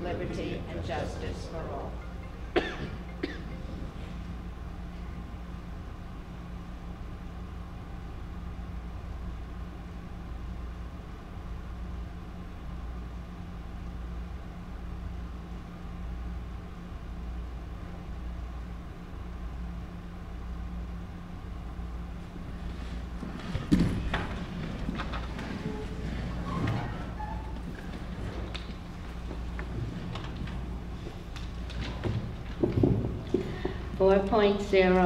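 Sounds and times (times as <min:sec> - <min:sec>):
steady low hum: 0:00.0 - 0:35.0.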